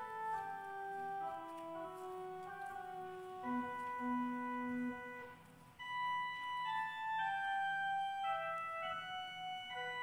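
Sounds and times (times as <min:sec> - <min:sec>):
organ playing sustained chords: 0:00.0 - 0:10.0.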